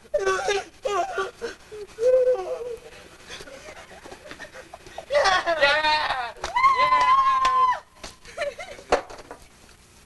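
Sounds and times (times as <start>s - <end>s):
people crying out: 0.0s - 3.3s, 5.1s - 7.9s.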